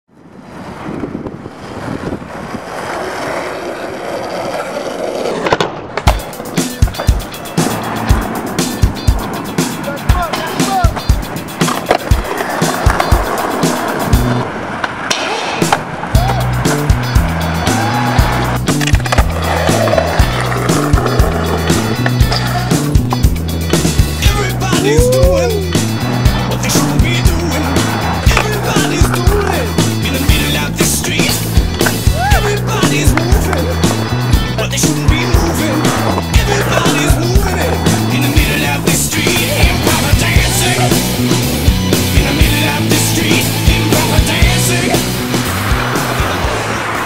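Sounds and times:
skateboard wheels rolling on asphalt: 0.1s - 47.0s
skateboard clacks: 0.5s - 24.9s, 25.8s - 47.0s
music track: 15.6s - 47.0s.

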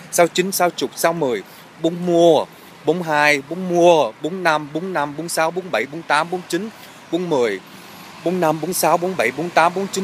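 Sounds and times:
man speaking sing-song: 0.1s - 10.0s.

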